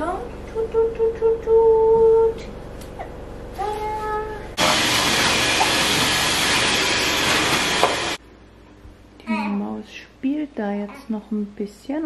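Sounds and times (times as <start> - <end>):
vacuum cleaner whooshing: 4.6 - 8.2.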